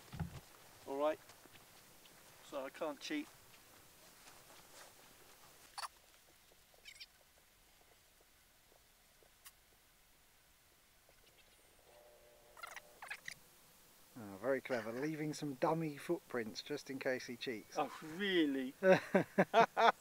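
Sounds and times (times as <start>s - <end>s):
faint outdoor ambience: 0.0s - 20.0s.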